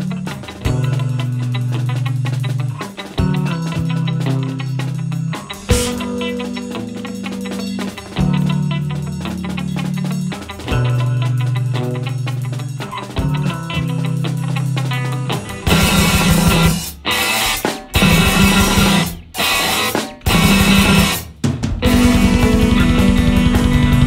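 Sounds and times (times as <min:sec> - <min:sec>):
instrumental math rock band: 0:00.0 - 0:24.0.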